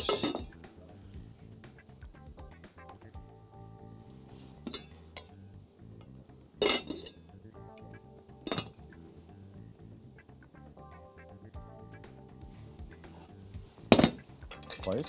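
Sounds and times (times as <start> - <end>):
soft background music: 0.0 - 15.0
spoon clinking on ceramic plate: 6.6 - 7.2, 8.5 - 8.7.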